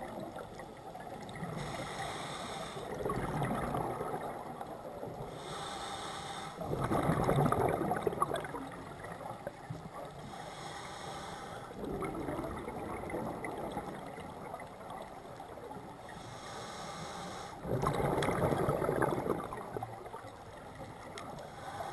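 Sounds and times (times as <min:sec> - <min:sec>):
hissing regulator inhale: 0:01.4 - 0:03.0, 0:05.3 - 0:06.6, 0:10.2 - 0:11.8, 0:16.1 - 0:17.7, 0:21.4 - 0:21.9
gurgling exhaled bubbles: 0:02.8 - 0:05.2, 0:06.6 - 0:10.2, 0:11.8 - 0:15.6, 0:17.6 - 0:21.1.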